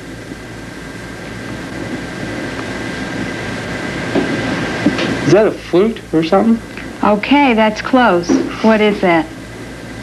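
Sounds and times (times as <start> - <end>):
faint high whine: 0.0 - 10.0
film soundtrack hiss: 0.0 - 10.0.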